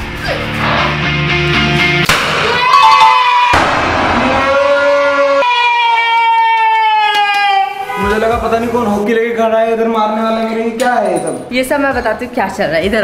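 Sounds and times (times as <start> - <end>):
party popper bursts: 2.0 - 4.7
long falling cry: 2.5 - 8.0.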